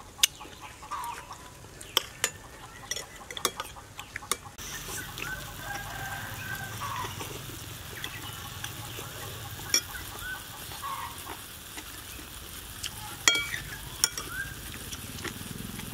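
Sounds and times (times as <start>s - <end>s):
chickens clucking: 0.0s - 15.9s
person slurping and chewing noodles: 0.4s - 9.4s, 11.2s - 15.9s
metal spoon clicking on plate: 13.2s - 14.3s.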